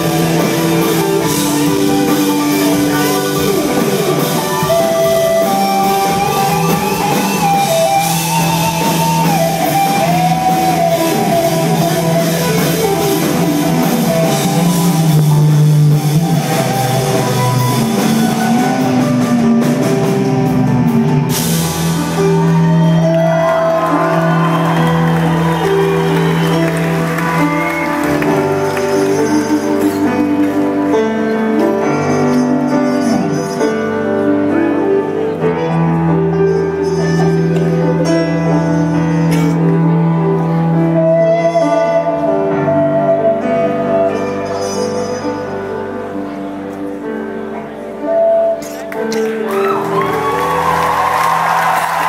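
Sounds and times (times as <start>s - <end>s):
crowd whooping and cheering: 0.0s - 30.7s, 48.8s - 52.0s
sliding lead guitar notes: 0.0s - 50.6s
live rock band playing: 0.0s - 52.0s.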